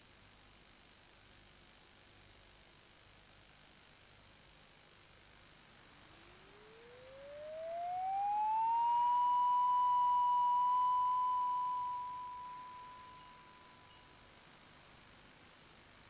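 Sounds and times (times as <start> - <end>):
rising electronic tone: 6.4 - 14.0.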